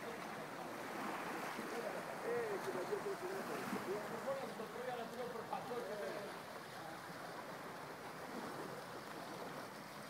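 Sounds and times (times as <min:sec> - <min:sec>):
sea waves lapping against rocks: 0:00.0 - 0:10.0.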